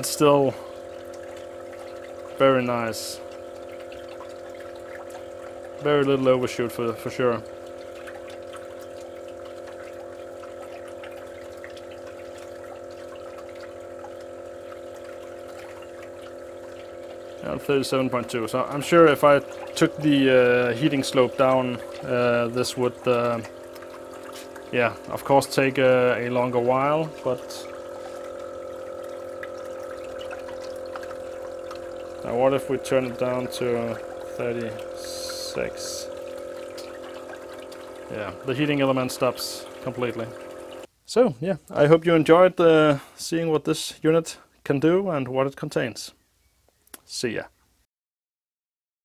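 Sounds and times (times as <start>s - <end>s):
pump motor humming: 0.0s - 40.9s, 41.7s - 43.6s
water churning and splashing: 0.0s - 40.9s.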